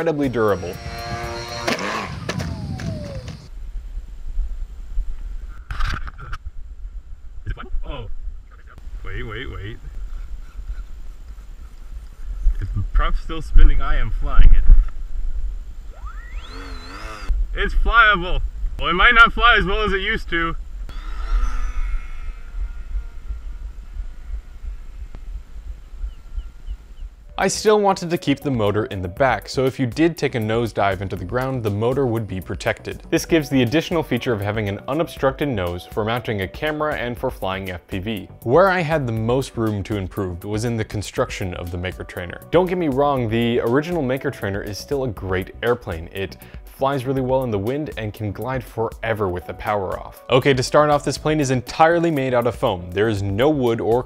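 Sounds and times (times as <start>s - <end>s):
faint steady whine: 0.3s - 27.4s
model airplane motor buzzing past: 0.4s - 3.5s, 15.9s - 17.3s, 20.9s - 24.6s
wind rumble on microphone: 0.5s - 16.5s, 17.3s - 27.3s
short noisy burst: 15.9s - 17.4s
small bird chirping: 20.9s - 27.3s.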